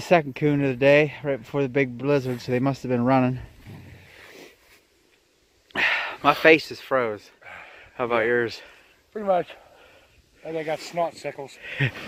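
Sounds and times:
faint breathy hiss: 0.0s - 12.0s.

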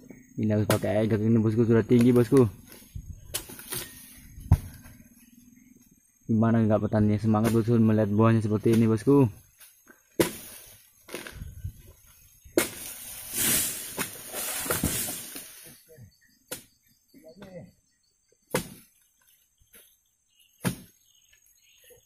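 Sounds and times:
fronds rustling and crashing down: 12.5s - 15.7s.

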